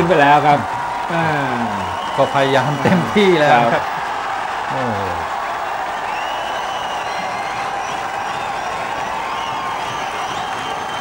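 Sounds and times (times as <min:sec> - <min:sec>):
commentator speaking: 0:00.0 - 0:03.9, 0:04.7 - 0:05.3
crowd applauding: 0:00.0 - 0:11.0
high whistles: 0:06.0 - 0:11.0.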